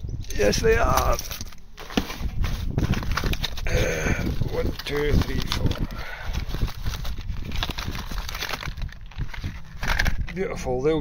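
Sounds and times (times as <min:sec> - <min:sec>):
cardboard boxes rustling: 0:00.4 - 0:10.3.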